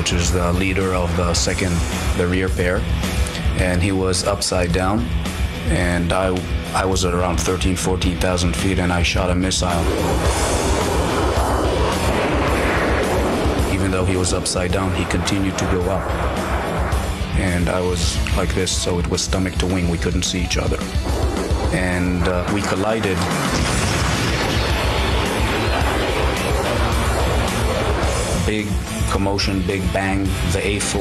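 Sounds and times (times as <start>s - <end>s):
dramatic background music: 0.0s - 31.0s
jet collision explosion rumble: 8.7s - 29.8s
missile rocket motor roaring: 9.4s - 18.9s, 20.8s - 29.1s.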